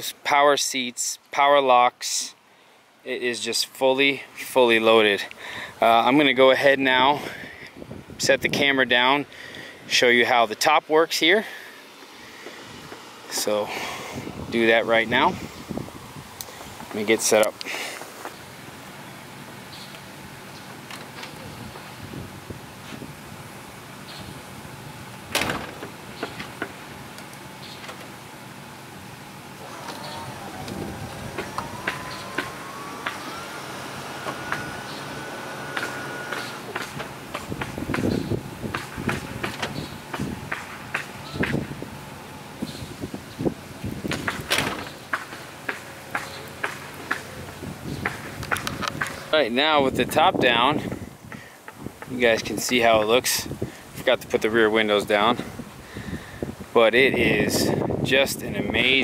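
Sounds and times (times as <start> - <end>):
convertible top motor whining: 25.3 - 49.6.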